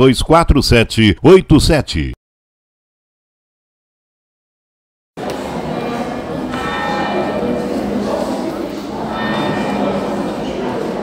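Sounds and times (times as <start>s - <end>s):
church bells ringing: 6.1s - 11.0s.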